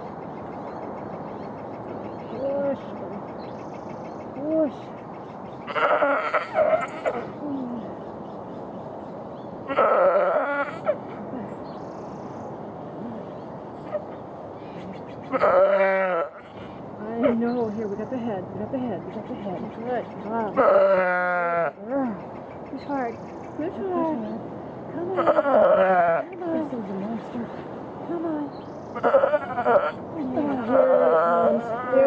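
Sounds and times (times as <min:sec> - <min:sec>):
steady background hiss: 0:00.0 - 0:32.0.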